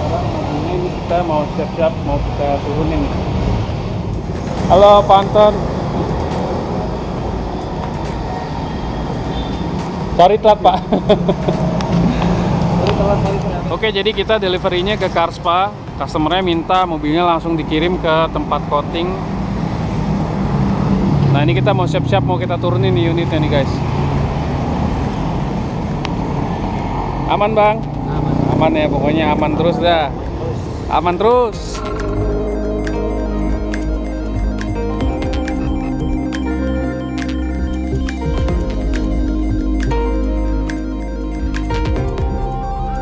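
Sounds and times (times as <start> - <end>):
vehicle rumble: 0.0 - 43.0
truck engine humming: 31.6 - 43.0.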